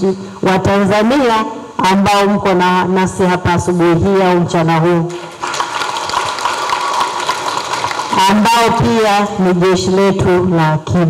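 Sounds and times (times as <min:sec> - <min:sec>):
audience applause: 0:05.2 - 0:08.4.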